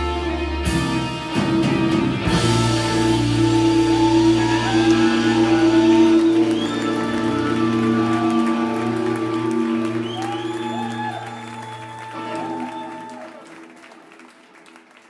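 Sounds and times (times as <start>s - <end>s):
scattered applause: 3.1s - 15.0s
audience shouting: 3.2s - 13.6s.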